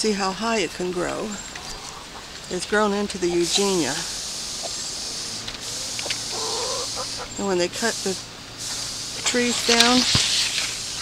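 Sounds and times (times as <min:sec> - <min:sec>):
steady low hum: 0:00.0 - 0:11.0
faint high hiss: 0:00.8 - 0:11.0
chicken clucking: 0:01.1 - 0:07.5.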